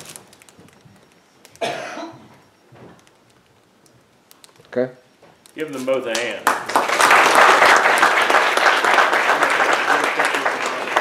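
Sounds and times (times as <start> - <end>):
loud cough: 1.6 - 2.2
throat clearing: 1.6 - 2.3.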